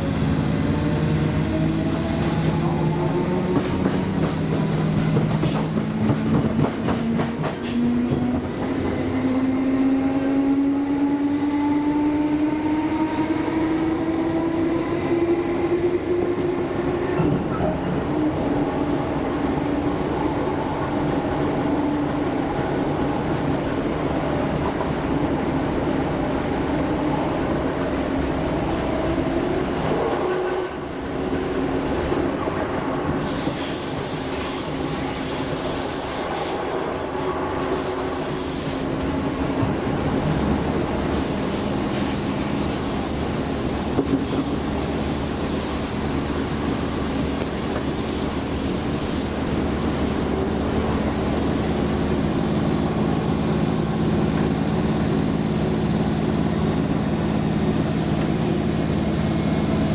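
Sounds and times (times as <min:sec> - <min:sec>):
wheels rumbling on rail: 0:00.0 - 0:59.9.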